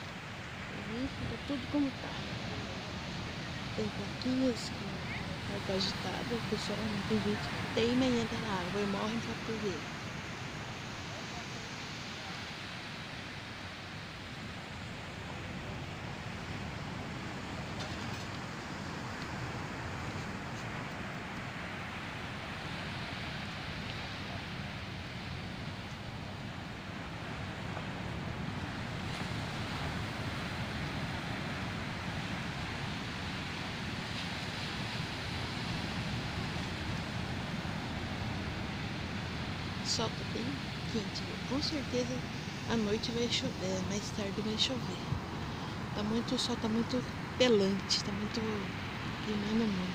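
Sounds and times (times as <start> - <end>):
ocean surf breaking on beach: 0.0 - 49.9
wind rumbling on microphone: 0.0 - 49.9.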